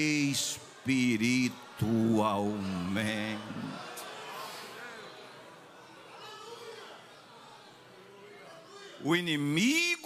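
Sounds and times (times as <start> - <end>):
man preaching: 0.0 - 3.8, 9.0 - 10.0
low hall murmur: 0.0 - 10.0.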